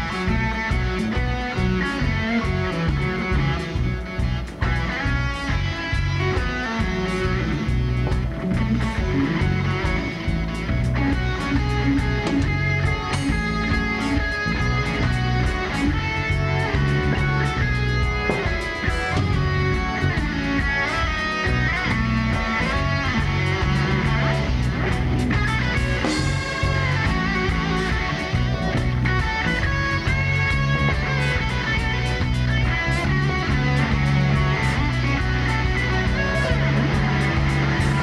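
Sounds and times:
bass: 0.0s - 38.0s
drums: 0.0s - 38.0s
electric guitar lead with bends: 0.0s - 38.0s.

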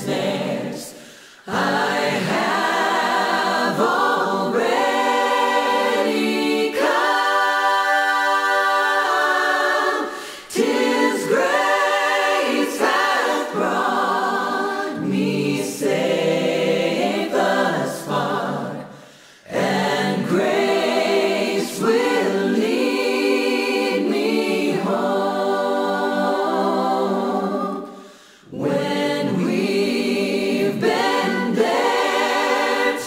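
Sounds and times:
unaccompanied choir singing: 0.0s - 33.0s.

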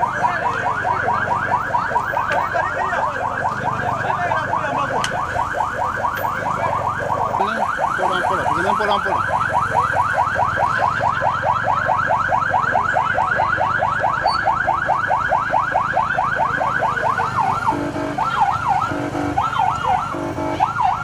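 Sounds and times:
electronic siren yelping: 0.0s - 21.0s.

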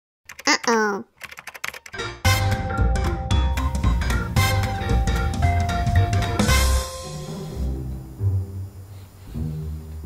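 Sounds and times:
computer keyboard typing: 0.3s - 2.0s
intro music with bass drum beat: 2.3s - 7.9s.

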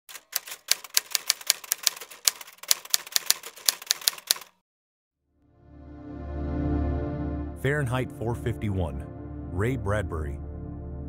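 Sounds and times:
typewriter keys clacking: 0.1s - 4.6s.

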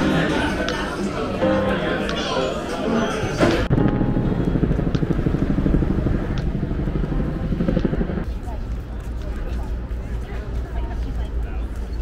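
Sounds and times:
people talking: 0.0s - 3.7s, 7.8s - 12.0s
traffic rumble: 3.3s - 12.0s.

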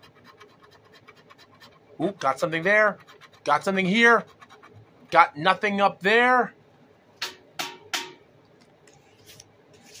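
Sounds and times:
scratching lottery ticket: 0.0s - 4.8s.

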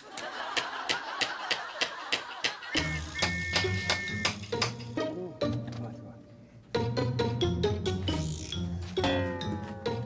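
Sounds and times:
light background music: 2.8s - 10.0s.

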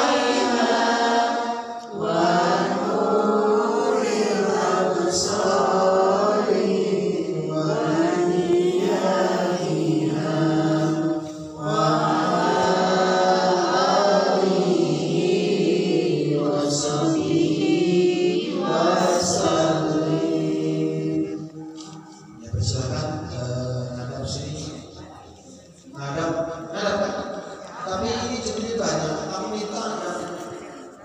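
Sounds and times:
women chanting in unison: 0.0s - 11.0s, 11.6s - 21.3s.

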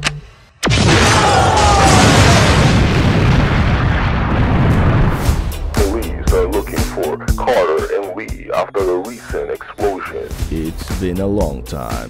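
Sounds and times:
explosion rumble: 0.6s - 6.7s.

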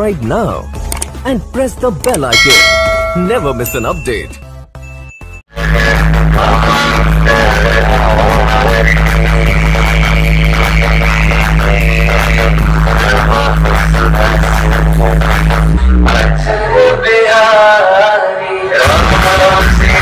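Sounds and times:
wavering melody: 2.3s - 4.4s.

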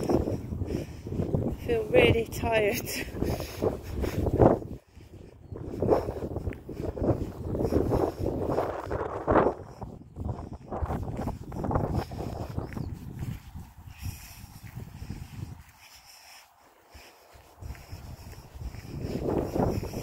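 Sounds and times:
footsteps through long grass: 2.6s - 20.0s.

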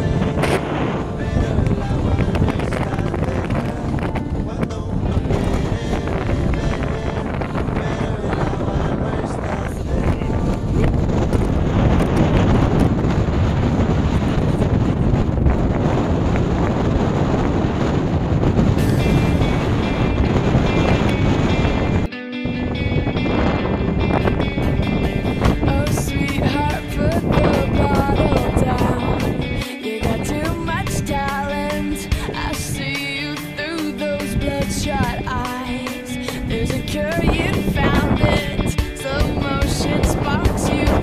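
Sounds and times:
sea waves breaking: 0.0s - 22.1s, 24.5s - 41.0s
guitar-led music: 0.0s - 41.0s
wind blowing on microphone: 0.0s - 41.0s.

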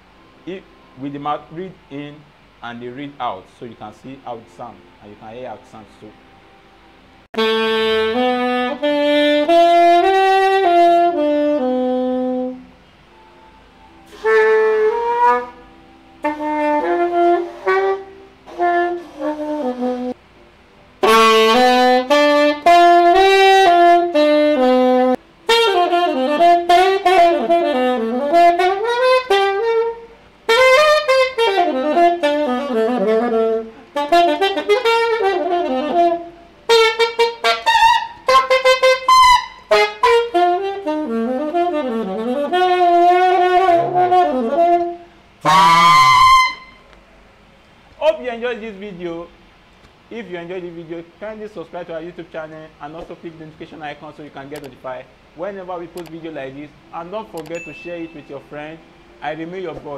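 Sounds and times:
saxophone playing a melody: 7.3s - 20.2s, 21.0s - 46.9s.

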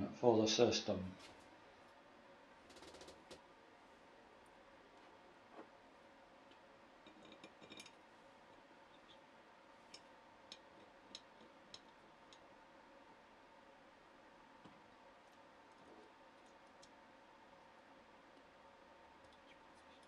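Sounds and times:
faint metal clicks and taps: 9.9s - 12.5s.

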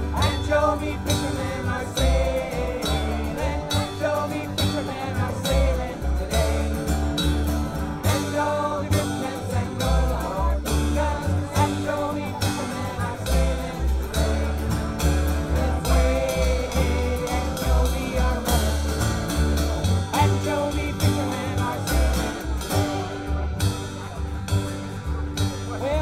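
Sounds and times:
voices singing together: 0.0s - 23.7s
strummed acoustic guitars: 0.0s - 26.0s
upright bass: 0.0s - 26.0s.

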